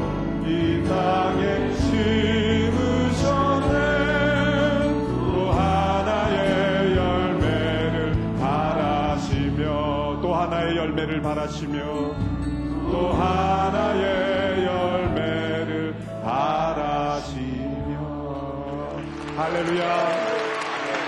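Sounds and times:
low accompaniment: 0.0s - 21.0s
person singing worship song: 0.0s - 21.0s.

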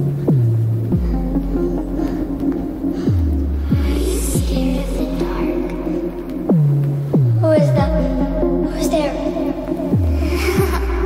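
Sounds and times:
deep bass notes swooping down: 0.0s - 8.8s
synth drone: 0.0s - 11.0s.

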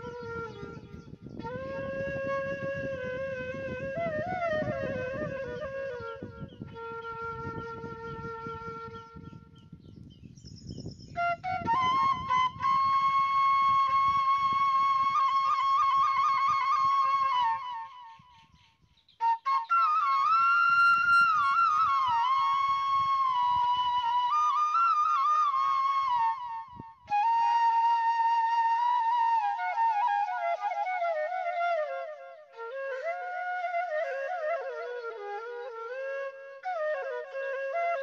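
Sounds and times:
flute melody: 0.0s - 10.0s, 11.0s - 18.5s, 19.2s - 38.0s.

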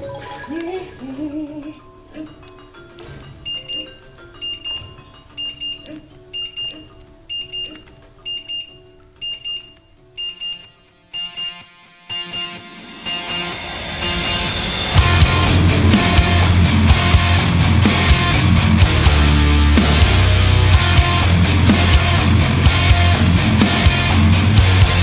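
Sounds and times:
soft background music: 0.0s - 21.8s
kitchen timer double beeping: 3.5s - 5.8s, 6.4s - 10.6s.

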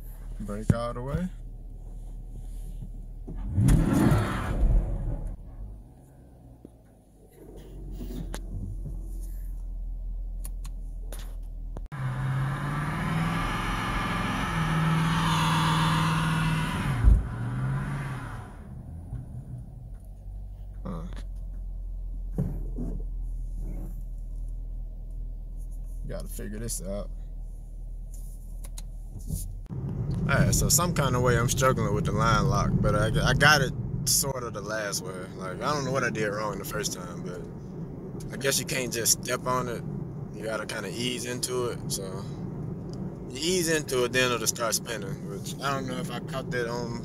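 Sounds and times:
car engine revving: 3.3s - 6.2s, 11.9s - 20.1s.

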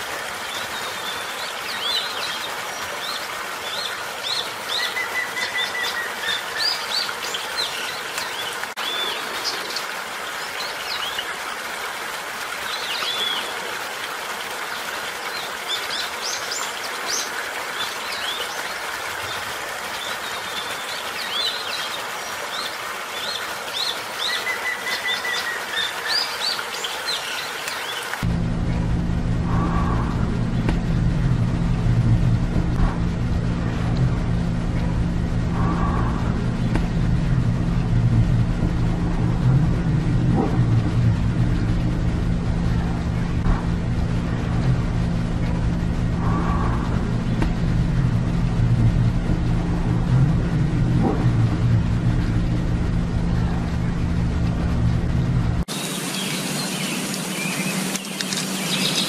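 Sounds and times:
loud low steady hum: 28.2s - 59.0s
small birds chirping: 55.7s - 59.0s.

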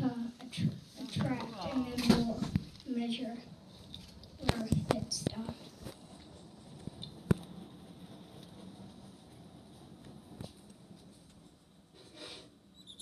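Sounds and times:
toy car sliding on paper: 12.0s - 12.5s.

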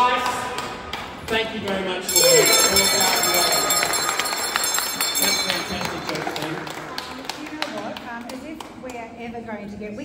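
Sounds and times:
people clapping: 0.0s - 9.2s
voices talking and calling out: 2.1s - 8.4s.

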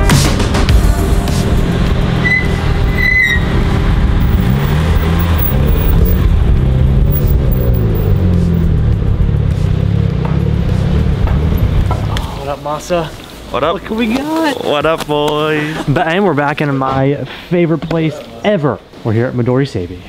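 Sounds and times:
music: 0.0s - 12.4s
car engines revving at low speed: 1.0s - 12.4s.

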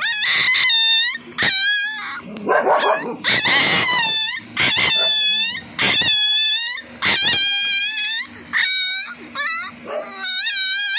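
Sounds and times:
puppy wailing: 0.0s - 10.9s.

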